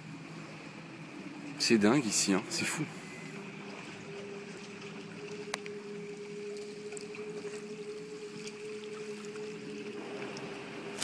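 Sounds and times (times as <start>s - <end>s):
faint ticks and splashes: 0.0s - 11.0s
steady motor hum: 0.0s - 11.0s
water washing along hull: 0.0s - 11.0s.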